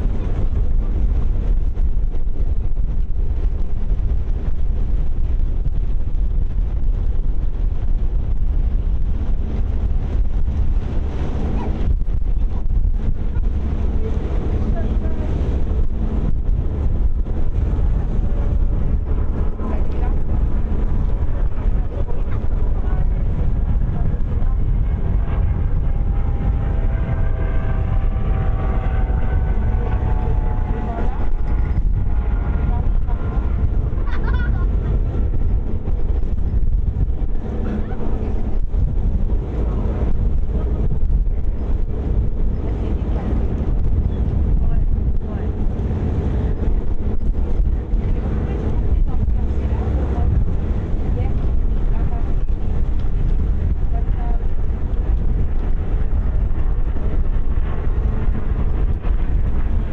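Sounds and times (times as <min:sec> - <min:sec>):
ferry running noise: 0:00.0 - 0:59.9
wind buffeting microphone: 0:00.0 - 0:59.9
faint voices: 0:09.6 - 0:59.9.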